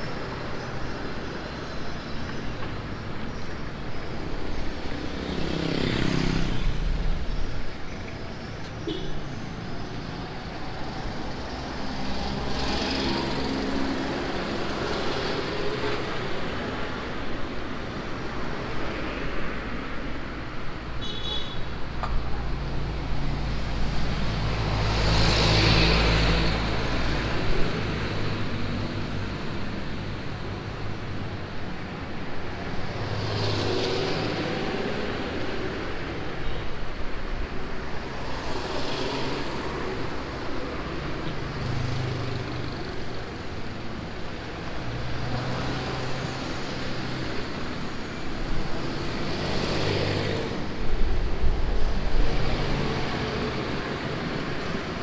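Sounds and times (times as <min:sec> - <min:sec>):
road traffic: 0:00.0 - 0:55.0
vehicles passing close by: 0:00.0 - 0:55.0.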